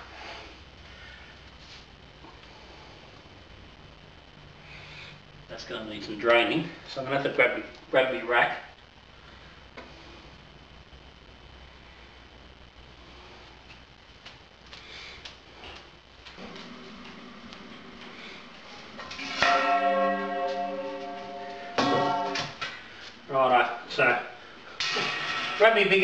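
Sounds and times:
loud bell-like ring: 18.9s - 22.6s
steel pots clanging and ringing: 19.0s - 22.6s.

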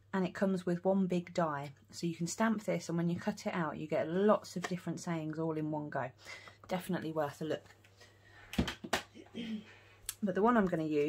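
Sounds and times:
objects knocking on table: 8.6s - 9.1s.

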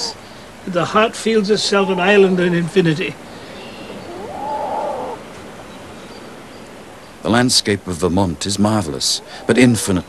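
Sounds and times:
loon wailing: 1.4s - 2.7s, 3.6s - 5.3s.

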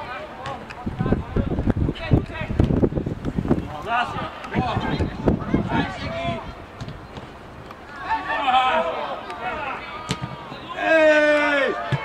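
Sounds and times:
voices shouting outdoors: 3.4s - 12.0s.

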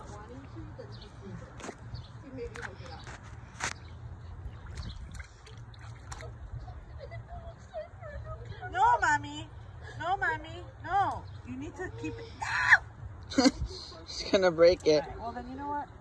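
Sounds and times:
baby splashing in water: 4.5s - 6.5s.

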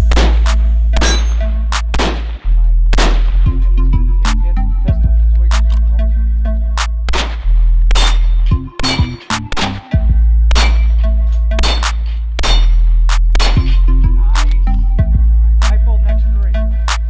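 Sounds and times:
gunshots: 0.0s - 3.6s, 7.1s - 14.6s
background music with heavy bass: 0.0s - 17.0s
steel targets ringing: 0.9s - 1.6s, 7.9s - 9.9s, 10.5s - 13.9s.

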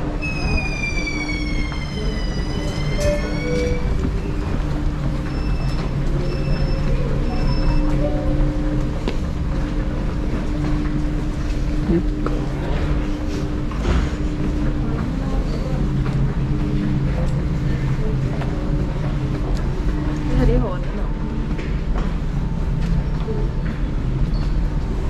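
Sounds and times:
train traction motor whine: 0.0s - 23.1s
steady hum: 0.0s - 25.0s.

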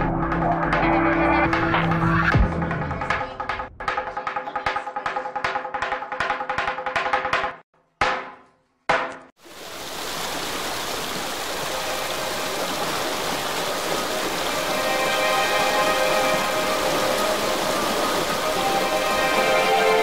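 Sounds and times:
drum hit: 2.3s - 4.4s
falling water: 9.4s - 20.0s
sustained musical chords: 14.2s - 20.0s.

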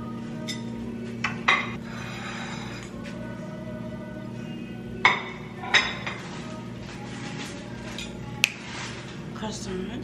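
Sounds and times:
background music: 0.0s - 10.0s
dishes and utensils clinking: 0.4s - 3.0s, 5.0s - 9.2s.

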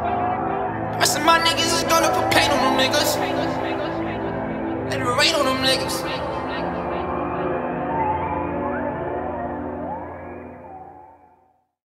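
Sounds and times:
sustained hip-hop chord: 0.0s - 9.7s.

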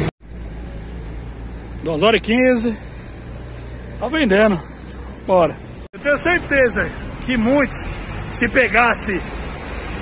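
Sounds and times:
road traffic rumble: 0.0s - 10.0s
man speaking: 1.8s - 3.0s, 3.9s - 9.4s.

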